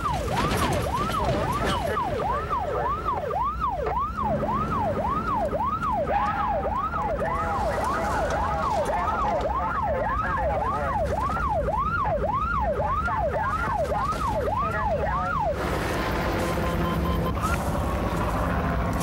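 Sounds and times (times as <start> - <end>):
car engine and road noise: 0.0 - 19.0
police siren yelping: 0.0 - 19.0.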